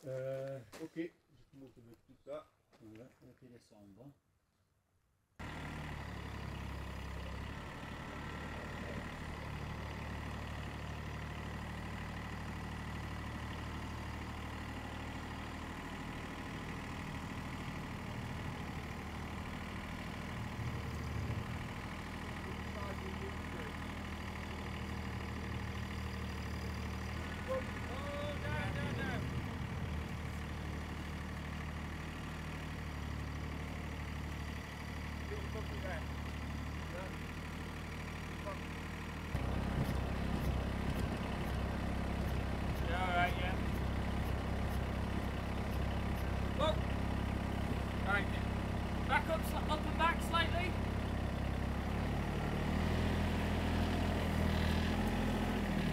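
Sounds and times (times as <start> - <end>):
tractor diesel engine idling: 5.4 - 55.9.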